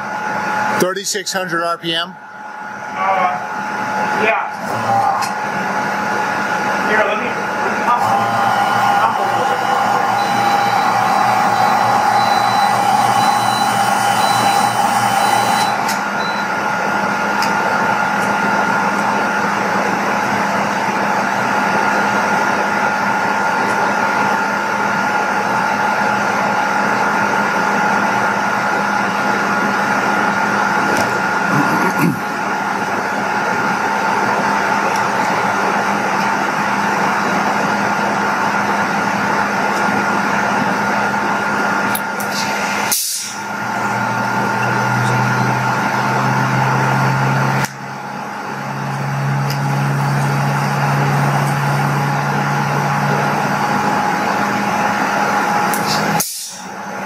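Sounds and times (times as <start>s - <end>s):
turbine whining tones: 0.0s - 57.0s
steam hiss: 42.3s - 43.5s, 55.8s - 56.7s.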